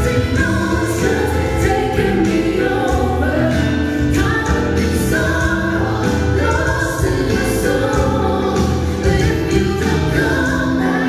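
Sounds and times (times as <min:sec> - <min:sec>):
amplified musical accompaniment: 0:00.0 - 0:11.0
people singing together: 0:00.0 - 0:11.0.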